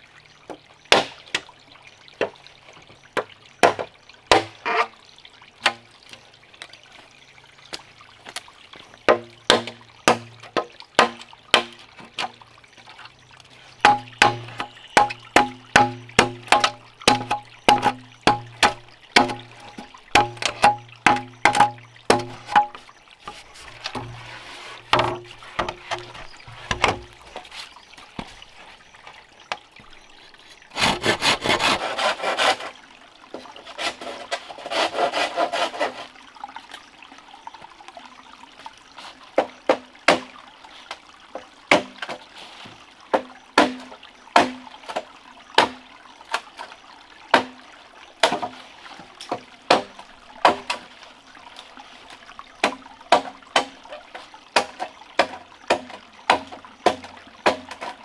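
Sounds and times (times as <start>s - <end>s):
machete chopping bamboo: 0.9s - 1.4s, 3.6s - 4.6s, 9.1s - 12.3s, 13.8s - 22.8s, 41.7s - 42.0s, 43.1s - 44.6s, 48.2s - 48.6s, 49.3s - 50.8s, 52.6s - 53.8s, 54.6s - 58.0s
rasping scraping: 30.8s - 32.8s, 33.7s - 36.1s.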